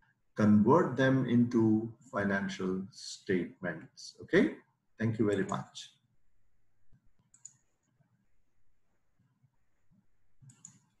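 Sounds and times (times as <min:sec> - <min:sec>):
faint clicks: 0:07.2 - 0:07.9, 0:10.4 - 0:11.0.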